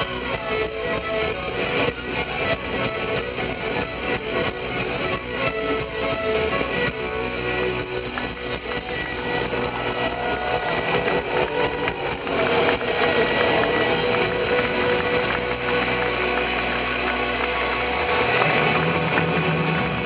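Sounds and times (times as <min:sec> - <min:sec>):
crowd noise: 0:00.0 - 0:20.0
punk band playing live: 0:00.0 - 0:20.0.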